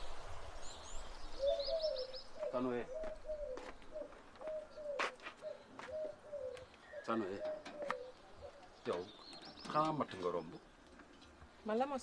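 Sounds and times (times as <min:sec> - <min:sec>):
small bird chirping: 0:00.0 - 0:11.8
dove cooing: 0:01.4 - 0:08.8.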